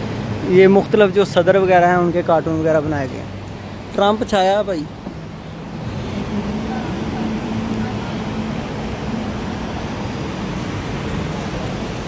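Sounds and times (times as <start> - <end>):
car traffic rumble: 0.0 - 12.0.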